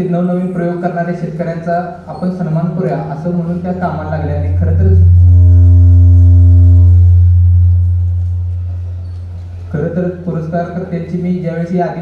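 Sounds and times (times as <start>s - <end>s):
microphone feedback howl: 3.6s - 11.0s.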